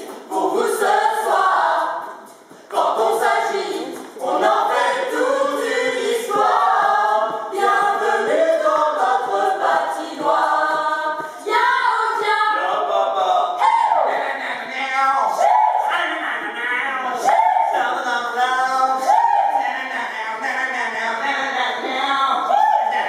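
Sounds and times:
group singing an anthem: 0.0 - 16.6, 17.2 - 21.5.

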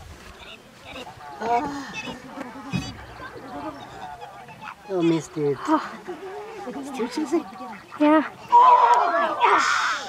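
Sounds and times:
spectators murmuring and exclaiming: 0.4 - 10.0.

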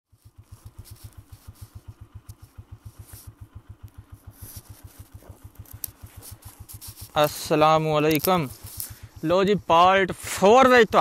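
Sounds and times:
motorcycle engine running at low revs: 0.1 - 11.0.

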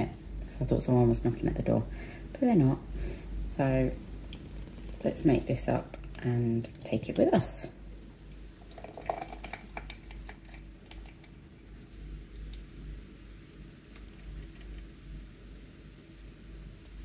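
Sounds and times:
faint low hum: 0.0 - 17.0
small clicks and drips: 4.1 - 5.1, 5.8 - 6.9, 8.3 - 15.0
liquid pouring onto ice: 8.6 - 14.9.

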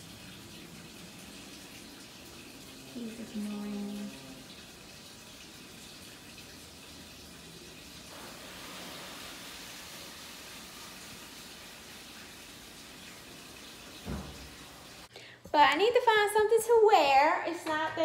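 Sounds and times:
running water rushing: 0.0 - 15.1.

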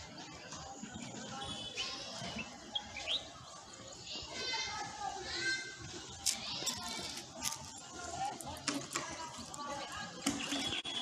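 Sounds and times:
children calling and shouting: 0.0 - 11.0.

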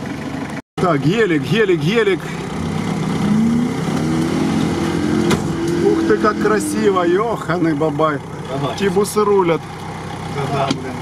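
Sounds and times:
engine revving: 1.6 - 11.0.

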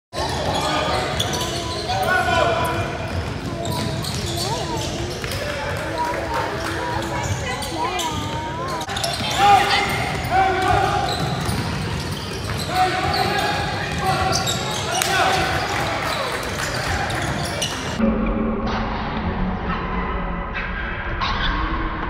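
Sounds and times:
sneakers squeaking: 0.2 - 18.0
basketball bouncing on wooden floor: 9.9 - 14.5.

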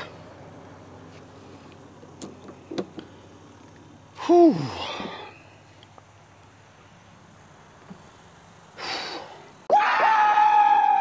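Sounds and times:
high scream-like yell: 9.7 - 11.0.

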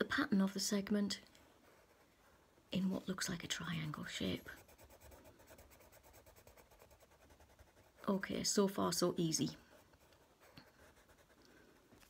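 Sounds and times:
pencil scratching on paper: 1.6 - 2.3, 4.0 - 8.4, 9.5 - 11.8.

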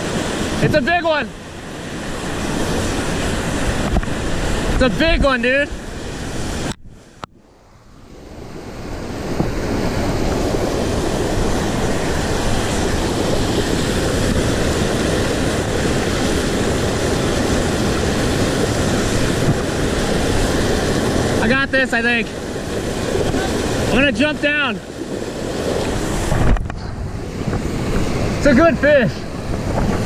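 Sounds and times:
river rushing over boulders: 0.0 - 30.0.

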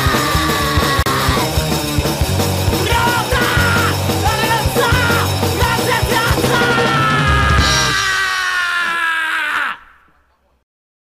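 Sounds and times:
punk band held note: 0.0 - 10.0.

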